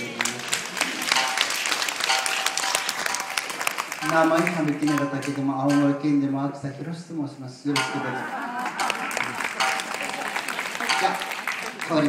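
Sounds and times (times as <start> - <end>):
audience applauding: 0.0 - 5.9, 7.8 - 12.0
laughter: 7.9 - 10.9.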